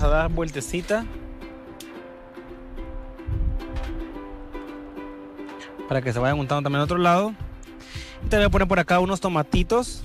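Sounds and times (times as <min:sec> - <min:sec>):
plucked string music: 0:00.0 - 0:10.0.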